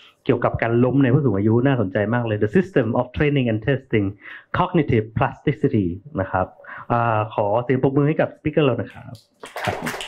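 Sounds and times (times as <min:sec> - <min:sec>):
man speaking: 0:00.0 - 0:10.0
talk under applause: 0:09.4 - 0:10.0.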